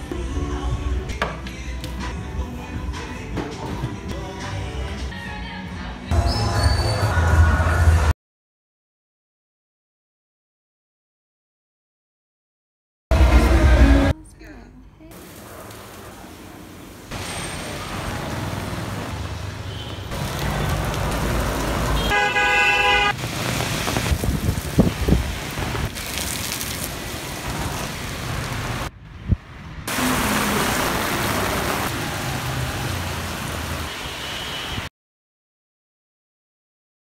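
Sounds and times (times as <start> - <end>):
street traffic: 0.0 - 8.1, 13.1 - 34.9
rain: 15.1 - 28.9, 29.8 - 34.9
vehicle horn: 19.7 - 20.1, 21.9 - 23.2, 33.9 - 34.9.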